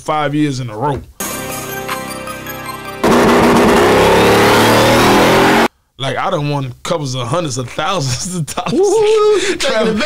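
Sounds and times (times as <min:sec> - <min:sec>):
music: 0:01.2 - 0:05.2
car engine accelerating hard: 0:03.0 - 0:05.7.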